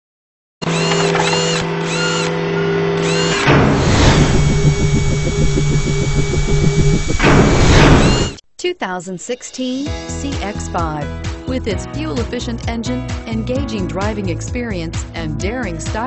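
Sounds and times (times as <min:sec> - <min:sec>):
fast mechanical pulsing: 0:00.7 - 0:08.4
short sweeping tones: 0:00.8 - 0:08.4
synthesized intro music: 0:02.4 - 0:08.4
whoosh: 0:03.4 - 0:08.4.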